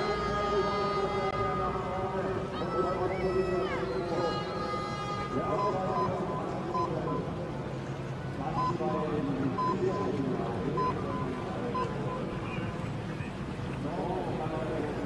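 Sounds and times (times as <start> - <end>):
commentator speaking: 0.0 - 7.6, 8.3 - 12.8, 13.8 - 15.0.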